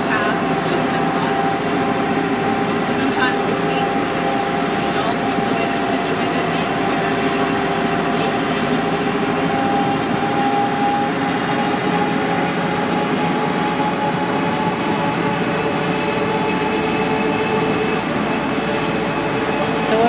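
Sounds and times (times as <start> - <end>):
bus engine and road noise: 0.0 - 20.0.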